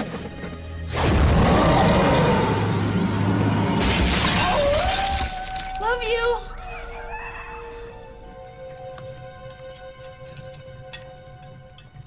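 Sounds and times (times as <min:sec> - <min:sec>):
crash with glass shattering: 0:03.8 - 0:06.3
wavering pitched cry: 0:06.5 - 0:07.9
music with held notes: 0:07.6 - 0:12.0.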